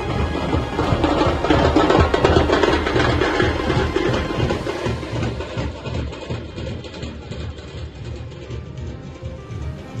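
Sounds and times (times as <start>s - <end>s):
broad noisy din: 0.0s - 10.0s
drums beating low rhythm: 0.0s - 10.0s.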